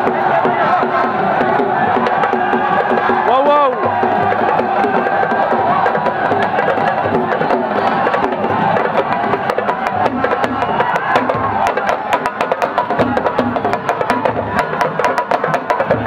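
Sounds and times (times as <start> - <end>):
fast hand drumming: 0.0 - 16.0
mass of voices: 0.0 - 16.0.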